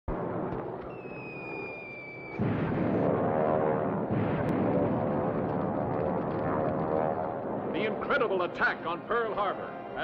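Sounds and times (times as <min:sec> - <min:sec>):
dense crackling rumble: 0:00.1 - 0:08.9
falling bomb whistle: 0:00.9 - 0:03.3.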